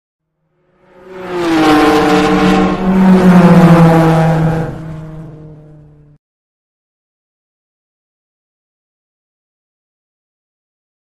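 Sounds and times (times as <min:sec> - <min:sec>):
car engine: 0:00.3 - 0:06.2.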